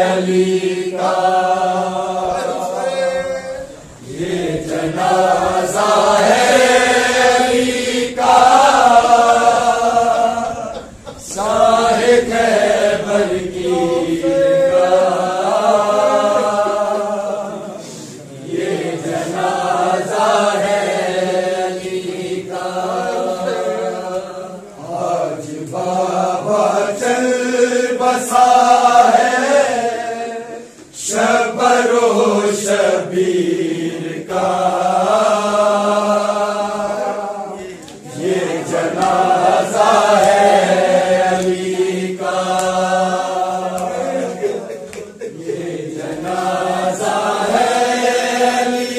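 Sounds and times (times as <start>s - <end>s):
men chanting a lament in unison: 0.0s - 48.9s.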